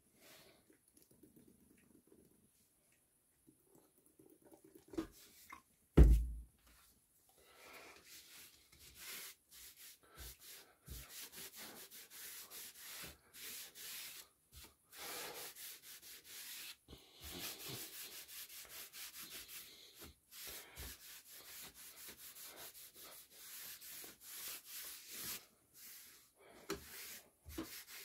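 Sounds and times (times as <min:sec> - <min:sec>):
cloth rag wiping wood: 0:08.0 - 0:28.0.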